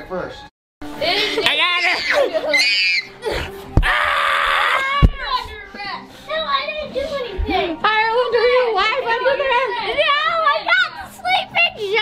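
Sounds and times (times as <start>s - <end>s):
children squealing and calling out: 1.5s - 5.4s.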